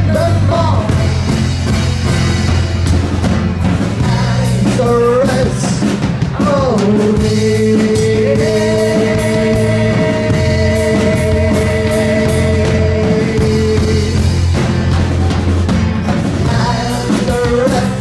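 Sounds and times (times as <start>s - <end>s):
person singing: 0.0s - 1.5s, 3.9s - 15.4s, 16.2s - 18.0s
bass guitar: 0.0s - 18.0s
drums: 0.0s - 18.0s.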